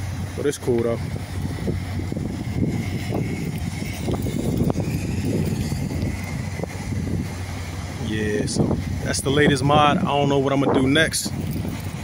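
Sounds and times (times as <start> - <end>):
car engine idling: 0.0 - 12.0
wind on microphone: 0.0 - 12.0.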